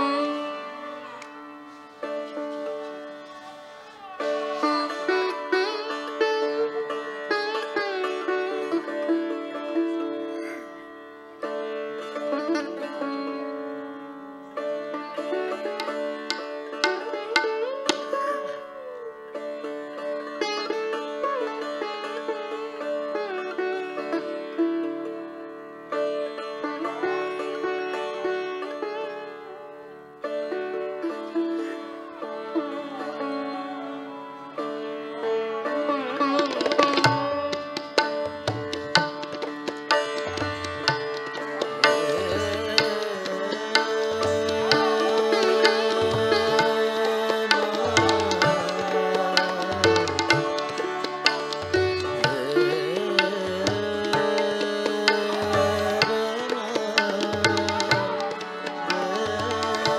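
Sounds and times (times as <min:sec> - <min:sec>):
sitar playing melody: 0:00.0 - 0:59.9.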